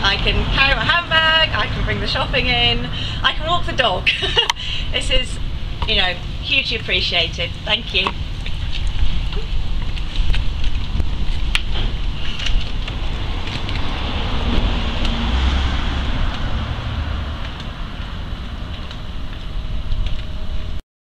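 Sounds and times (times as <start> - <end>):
street noise hiss: 0.0 - 20.8
wind rumbling on microphone: 0.0 - 20.8.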